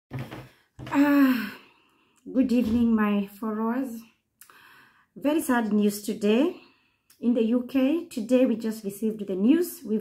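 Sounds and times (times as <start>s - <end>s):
woman sighing: 0.9s - 1.8s.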